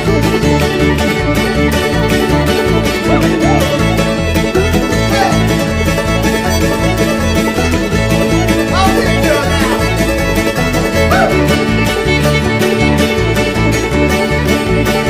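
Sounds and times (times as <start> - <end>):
banjo: 0.0 - 15.0
fiddle: 0.0 - 15.0
guitar: 0.0 - 15.0
upright bass: 0.0 - 15.0.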